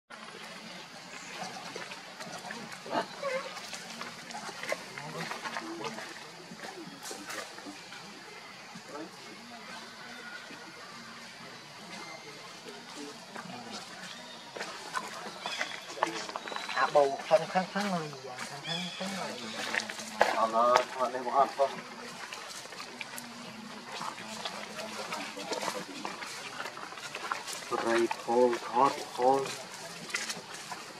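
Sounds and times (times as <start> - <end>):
faint voices: 0.1 - 30.9
outdoor ambience: 0.1 - 30.9
monkeys grunting and calling: 2.4 - 6.0.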